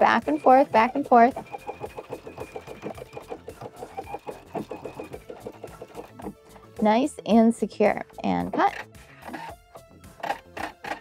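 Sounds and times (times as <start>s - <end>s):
sewing machine stitching: 0.0s - 6.4s.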